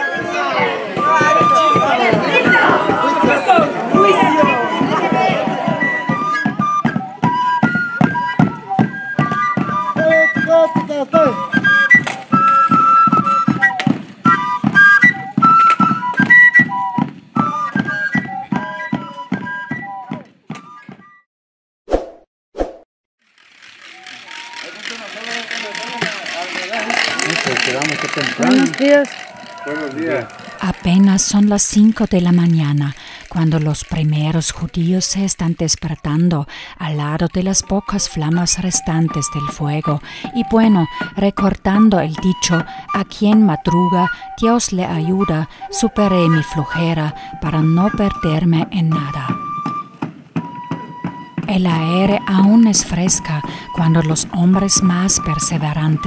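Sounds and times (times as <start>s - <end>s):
drum beating steadily: 0.0s - 20.2s, 24.0s - 35.9s, 37.0s - 56.0s
flute melody: 0.0s - 21.2s, 23.8s - 36.0s, 36.8s - 56.0s.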